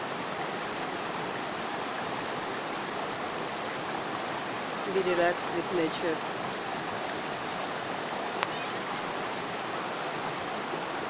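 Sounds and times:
stream flowing over stones: 0.0s - 11.0s.

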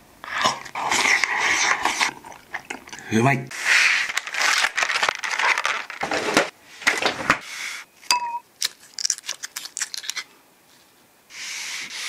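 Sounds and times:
loud slurping and mouth noises: 0.2s - 4.2s.

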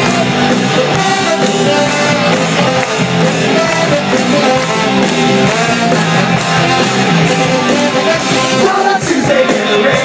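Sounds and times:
trombone: 0.0s - 9.2s
live ska-punk band playing: 0.0s - 10.0s.

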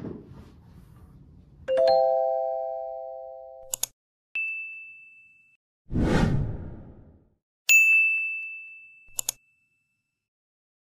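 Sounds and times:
whoosh: 5.9s - 7.2s.

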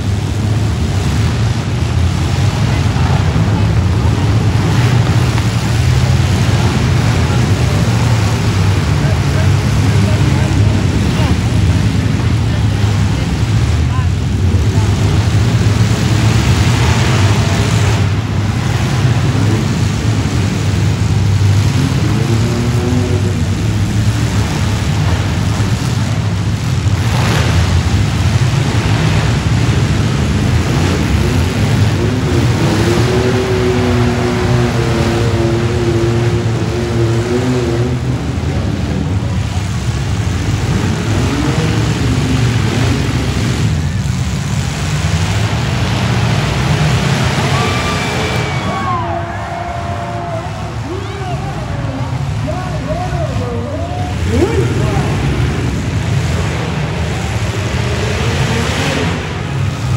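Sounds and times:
crowd noise: 0.0s - 59.9s
engines revving: 0.0s - 59.9s.

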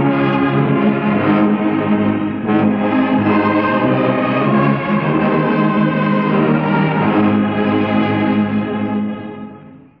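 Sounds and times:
orchestra holding a hymn chord: 0.0s - 9.9s.

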